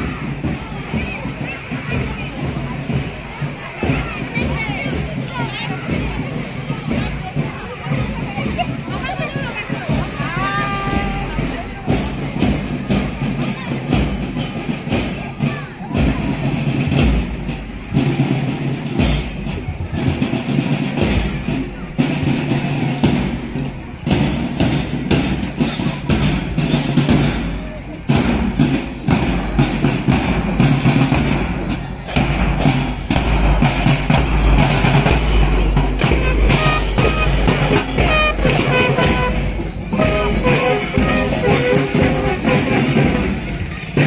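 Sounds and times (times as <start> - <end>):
marching band drums beating: 0.0 - 44.0.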